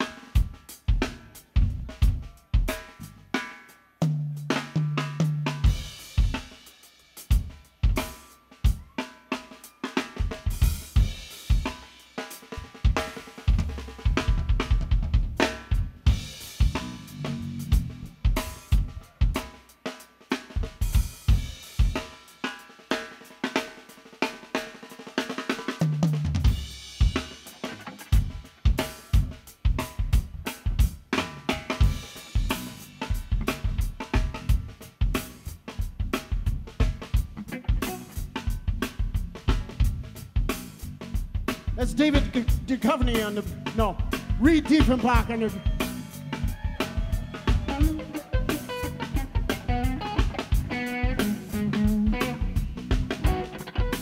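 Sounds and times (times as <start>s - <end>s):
drum kit playing: 0.0s - 54.0s.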